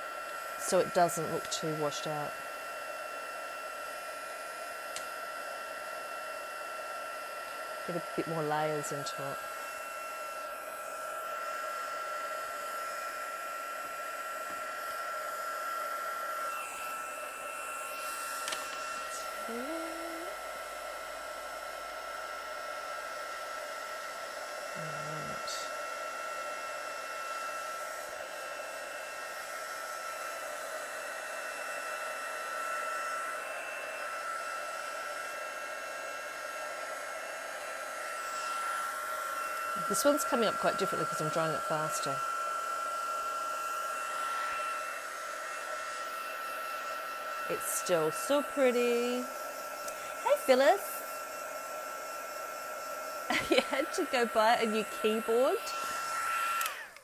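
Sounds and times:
heat gun blowing air: 0.0s - 57.0s.

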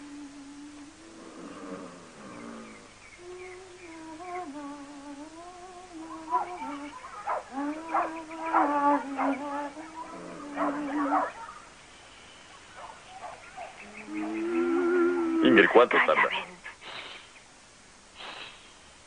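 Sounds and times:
woman humming: 0.0s - 11.3s, 13.8s - 15.6s.

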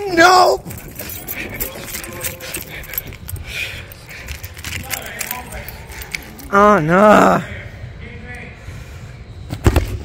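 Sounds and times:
rattling and jingling: 0.0s - 7.0s.

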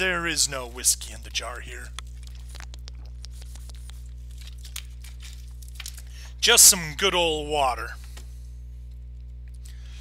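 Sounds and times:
electrical hum: 0.0s - 10.0s
drink clicks and crinkles: 1.0s - 6.4s.

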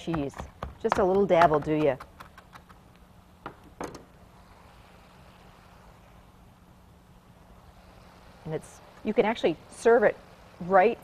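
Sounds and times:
knife chopping on plastic board: 0.0s - 2.7s
steady low hum: 0.0s - 11.0s.

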